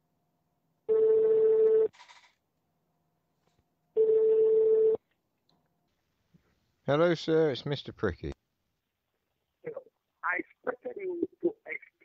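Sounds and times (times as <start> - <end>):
telephone ringing tone: 0.9 - 2.0, 4.0 - 5.0.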